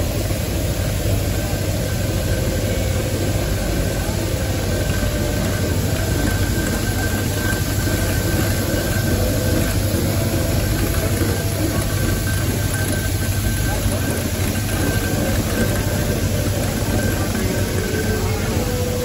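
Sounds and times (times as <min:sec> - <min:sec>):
people talking: 0:00.0 - 0:19.0
steam engine rumble and hiss: 0:00.0 - 0:19.0.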